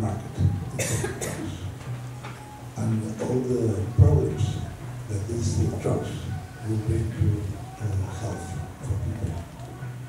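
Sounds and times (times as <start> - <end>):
person coughing: 0.8 - 1.5.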